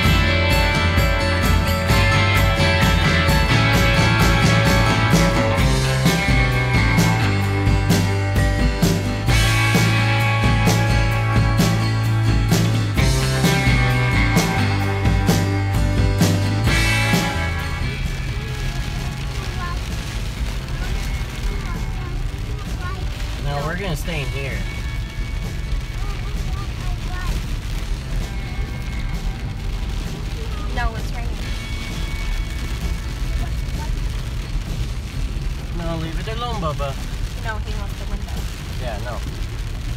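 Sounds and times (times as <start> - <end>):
background music: 0.0 - 39.9
truck engine and tyres on dirt: 0.0 - 39.9.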